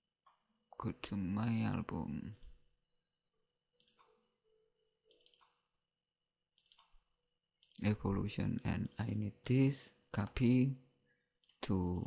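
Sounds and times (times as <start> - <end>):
computer mouse clicks: 3.8 - 4.2, 5.1 - 5.7, 6.6 - 7.9, 11.4 - 11.7.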